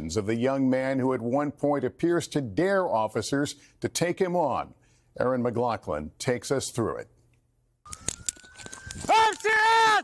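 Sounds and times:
person shouting: 9.1s - 10.0s.

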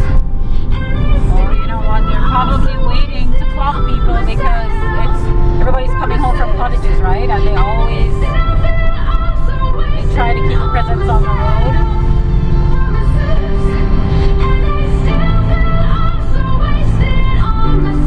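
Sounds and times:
road and engine rumble: 0.0s - 18.0s
song with vocals on car radio: 0.0s - 18.0s.

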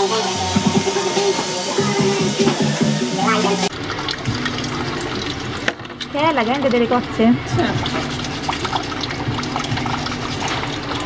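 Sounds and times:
steel wool scrubbing shells: 6.1s - 11.0s.

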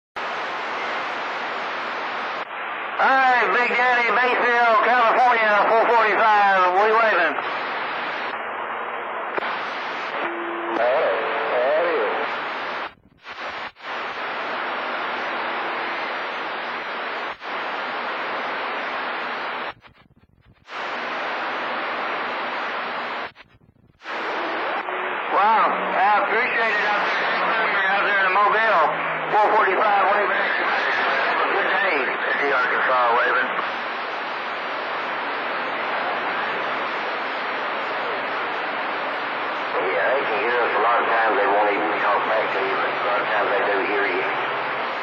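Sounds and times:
radio static hiss: 0.2s - 45.0s.

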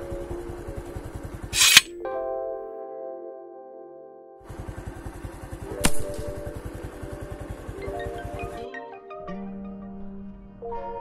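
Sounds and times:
slingshot snap: 1.6s - 1.9s
background music: 5.8s - 11.0s.

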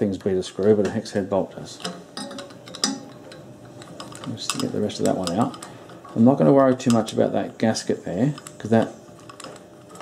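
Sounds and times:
screwdriver clicking on metal: 3.8s - 5.8s.

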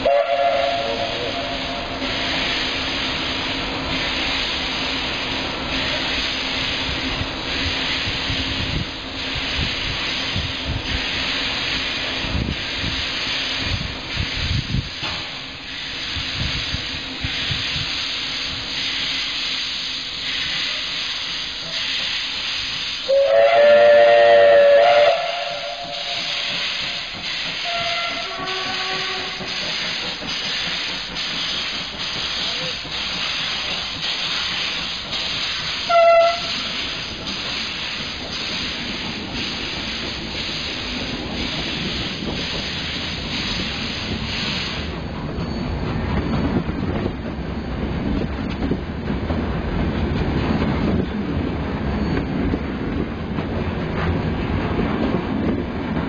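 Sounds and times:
steam whistle: 0.0s - 2.3s, 23.0s - 29.6s, 35.8s - 36.8s
steam hissing: 0.0s - 45.1s
train rumble: 0.0s - 56.0s.

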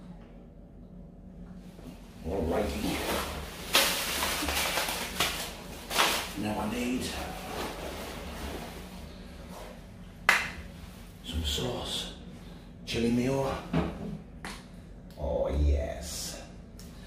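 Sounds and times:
rustling and handling noise: 1.5s - 10.0s.

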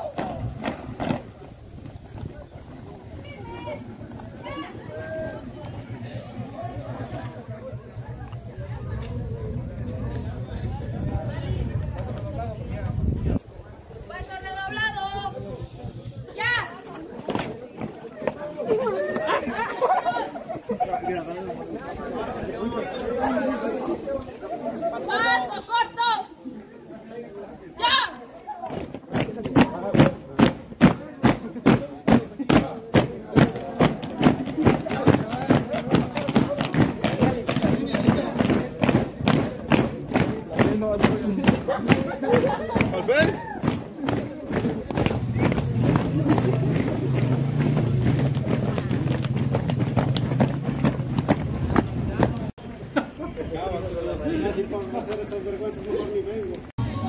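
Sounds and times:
feet stamping on concrete: 0.0s - 4.4s, 28.7s - 52.5s
students chattering: 0.0s - 57.0s.

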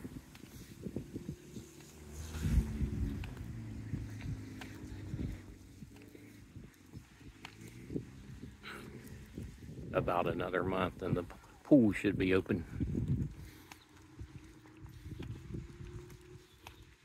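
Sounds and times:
footsteps on pavement: 0.0s - 9.7s, 10.5s - 17.0s
wind rumble on microphone: 0.0s - 17.0s.

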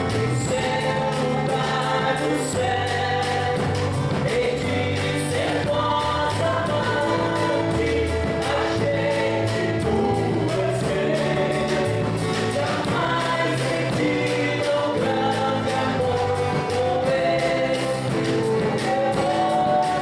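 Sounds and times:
band with guitars and drums: 0.0s - 20.0s
man singing: 0.0s - 20.0s
woman singing: 0.3s - 20.0s.

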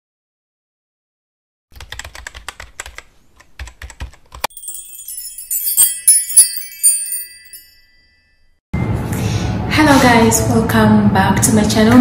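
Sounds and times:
tinkling sparkle chime: 4.5s - 8.6s.

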